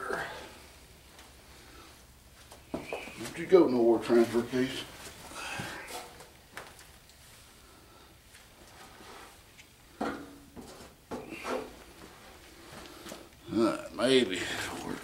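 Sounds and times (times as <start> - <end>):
handling and shuffling noises: 1.1 - 7.6, 8.2 - 13.4.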